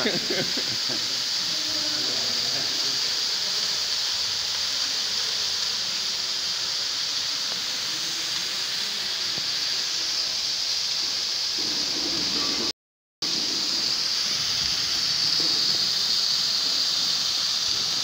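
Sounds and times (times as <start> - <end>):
fire extinguisher gas hissing: 0.0 - 18.0.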